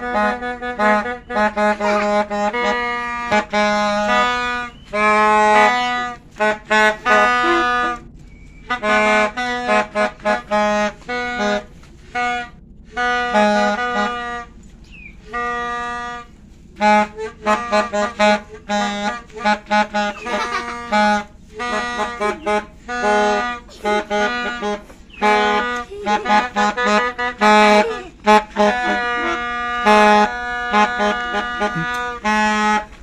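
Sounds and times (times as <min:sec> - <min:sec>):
toy trumpet buzzy honks: 0:00.0 - 0:14.6, 0:15.2 - 0:33.0.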